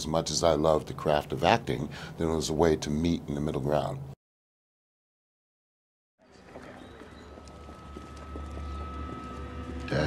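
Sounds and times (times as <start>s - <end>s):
low steady drone: 6.3s - 10.0s
footsteps on paved path: 6.4s - 10.0s.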